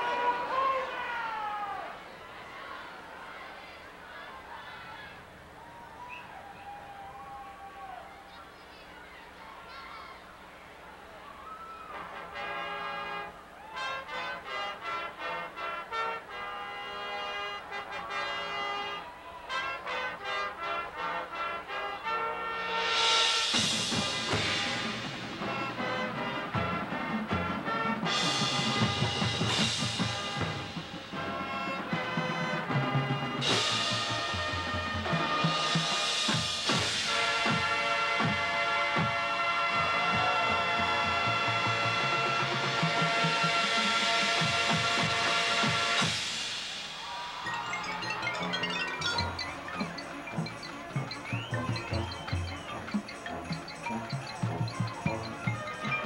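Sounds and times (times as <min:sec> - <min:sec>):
marching band playing: 0:19.5 - 0:56.0
cymbal crashes: 0:43.8 - 0:47.8.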